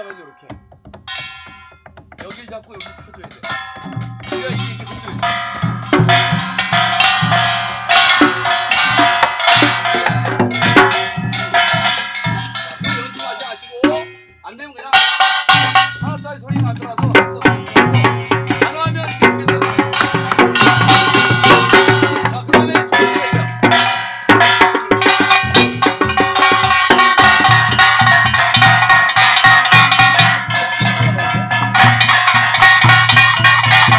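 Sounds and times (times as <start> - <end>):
hourglass drums: 0.0 - 33.9.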